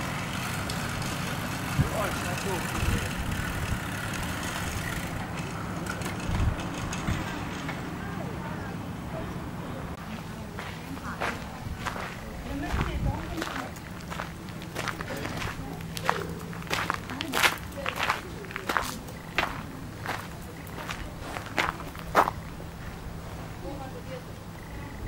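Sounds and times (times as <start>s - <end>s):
footsteps on gravel: 10.0s - 22.7s.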